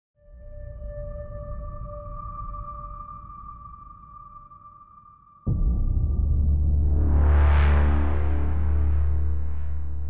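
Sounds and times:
low rumble: 0:05.5 - 0:10.0.

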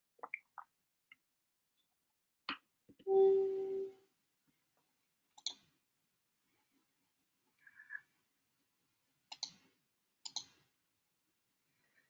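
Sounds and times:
sharp computer clicks: 0:10.2 - 0:10.6.

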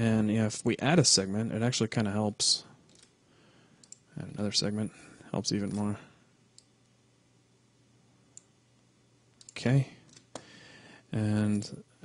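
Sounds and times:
computer mouse click: 0:03.8 - 0:04.0, 0:09.4 - 0:10.5.

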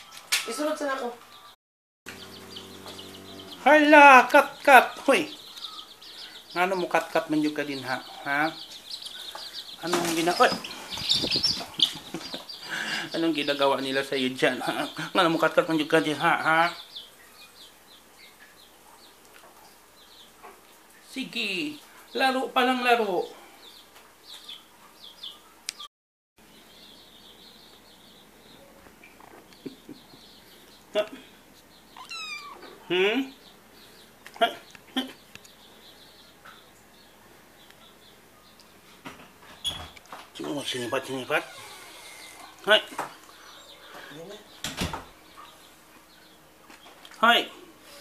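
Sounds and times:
cat meowing: 0:32.0 - 0:32.8
kitten crying: 0:32.0 - 0:32.8.

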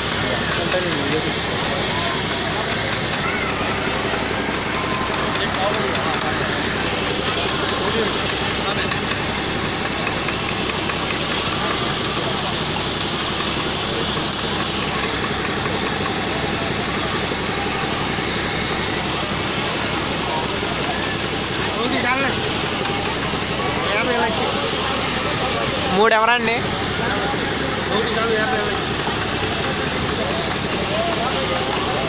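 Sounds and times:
engine-like hum: 0:00.0 - 0:32.0
many voices talking: 0:00.0 - 0:32.0.

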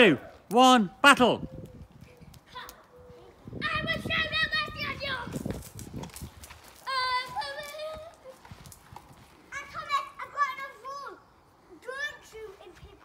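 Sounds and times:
children squealing and shouting: 0:02.5 - 0:05.4, 0:06.8 - 0:08.5, 0:09.5 - 0:12.7.

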